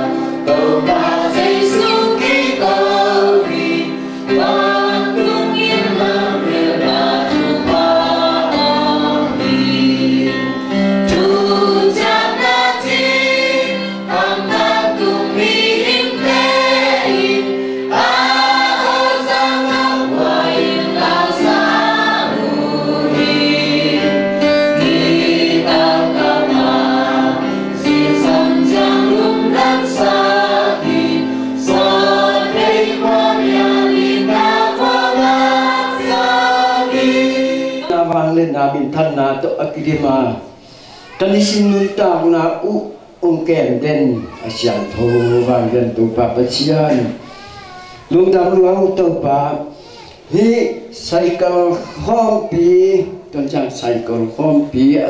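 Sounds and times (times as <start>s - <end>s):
congregation singing a hymn: 0.0s - 40.8s.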